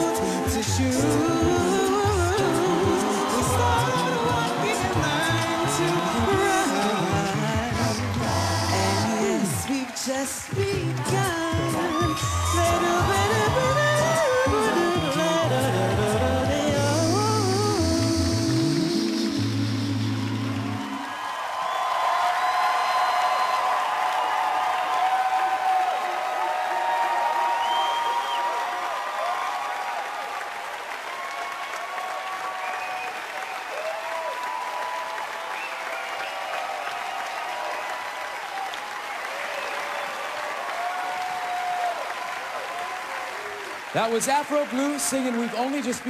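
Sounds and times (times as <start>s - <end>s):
a cappella vocal chord: 0.0s - 21.1s
audience applause and cheering: 0.0s - 46.0s.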